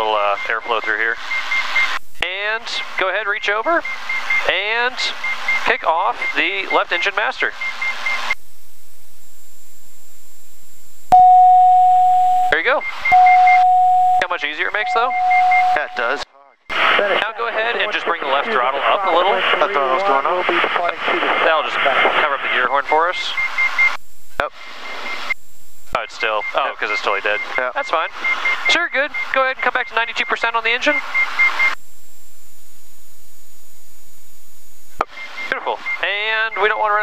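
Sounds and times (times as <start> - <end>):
faint high electronic whine: 0.0 - 37.0
faint warning horn beeps: 11.1 - 16.7
warning horn steady tone: 13.1 - 14.2.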